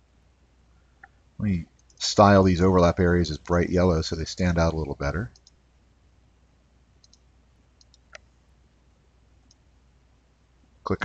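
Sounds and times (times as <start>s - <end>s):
computer mouse clicks: 1.0s - 2.0s, 5.3s - 5.6s, 7.0s - 8.3s, 9.4s - 9.6s.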